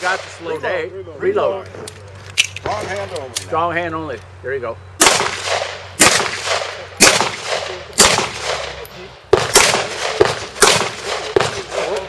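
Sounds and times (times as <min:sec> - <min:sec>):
pistol shots echoing: 0:05.0 - 0:12.0.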